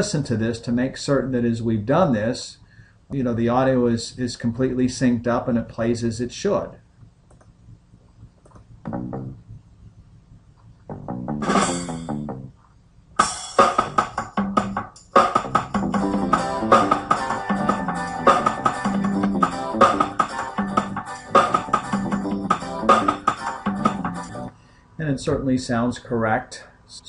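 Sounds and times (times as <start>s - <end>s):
bass guitar: 8.8s - 9.6s, 10.8s - 12.6s, 13.2s - 24.5s
acoustic guitar: 11.3s - 12.2s
drums: 11.4s - 12.3s, 13.2s - 24.4s.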